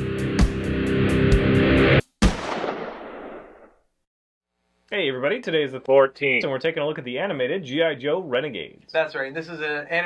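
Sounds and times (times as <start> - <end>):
music: 0.0 - 2.0
gunshot with echo: 2.2 - 3.8.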